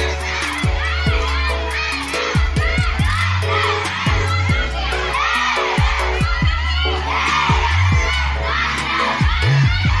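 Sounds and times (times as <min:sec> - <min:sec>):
children shouting together: 0:00.0 - 0:10.0
loud music with deep bass: 0:00.0 - 0:10.0.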